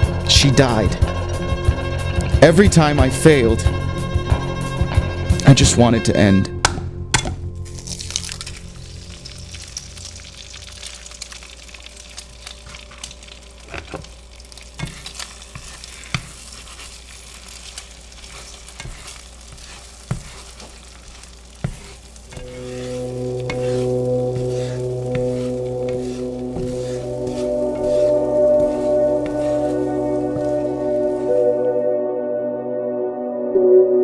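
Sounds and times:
egg sizzling in a pan: 0:07.6 - 0:31.7
spatula scraping a pan: 0:12.6 - 0:31.6
low music chord: 0:22.3 - 0:34.0.

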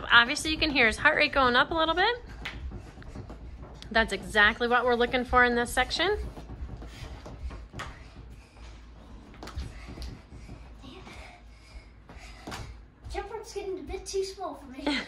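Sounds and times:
rope striking floor: 0:00.0 - 0:11.2, 0:12.0 - 0:13.3
child's voice: 0:13.1 - 0:15.0.

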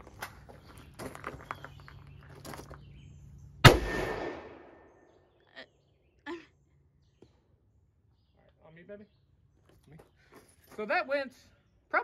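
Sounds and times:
echo of gunshot: 0:03.6 - 0:05.0.

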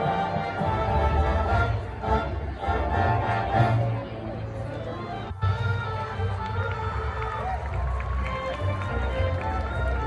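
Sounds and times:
brass and winds holding chords: 0:00.0 - 0:07.2.

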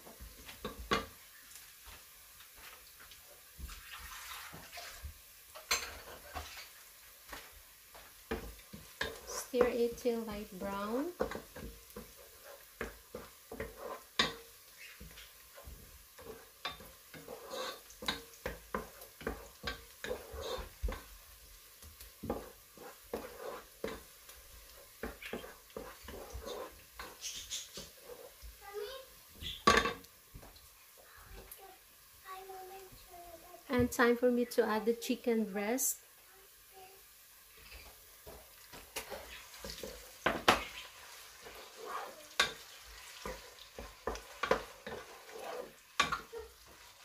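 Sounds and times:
onion sizzling in oil: 0:00.0 - 0:47.0
wooden spatula scraping a pot: 0:02.5 - 0:21.1, 0:21.8 - 0:28.6, 0:37.5 - 0:47.0.

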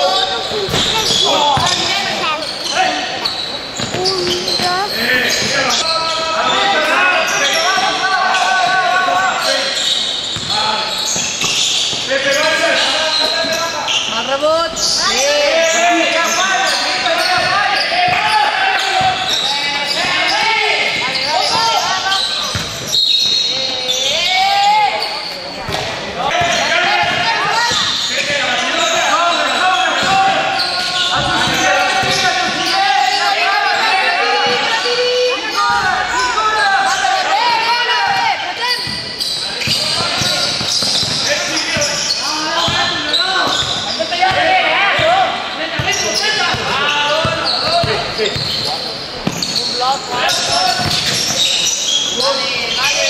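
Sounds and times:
players calling and shouting: 0:00.0 - 0:53.0
ball bouncing on court: 0:00.6 - 0:02.4, 0:03.3 - 0:05.8, 0:10.4 - 0:12.1, 0:17.1 - 0:23.7, 0:25.6 - 0:28.0, 0:30.0 - 0:30.4, 0:31.0 - 0:32.7, 0:38.0 - 0:42.0, 0:42.6 - 0:52.0.

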